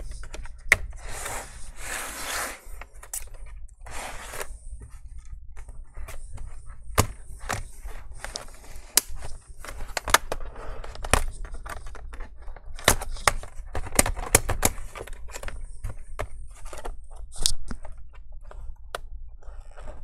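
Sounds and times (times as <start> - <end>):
scratchy scraping burst: 1.0 - 2.8
plastic clips clicking and snapping: 8.3 - 19.1.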